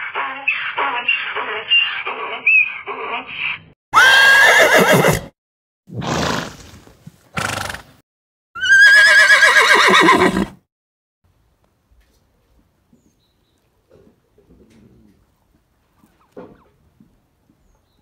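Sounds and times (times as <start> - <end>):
horse whinnying: 4.0 - 5.3, 8.6 - 10.6.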